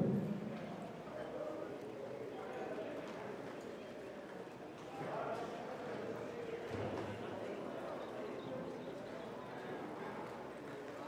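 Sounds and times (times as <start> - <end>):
spectators chatting: 0.0 - 4.1.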